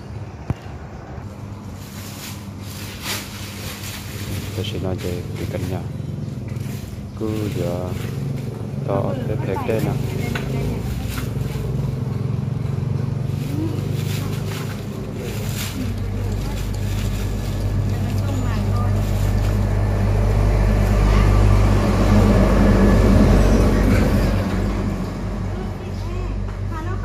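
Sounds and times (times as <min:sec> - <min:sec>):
vehicle engine running: 0:00.0 - 0:27.0
plastic bag rustling: 0:01.3 - 0:08.6, 0:13.1 - 0:20.8.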